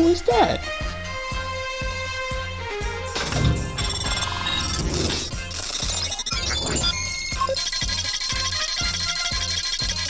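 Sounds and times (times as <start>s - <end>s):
bell-like electronic beeping: 3.3s - 10.0s.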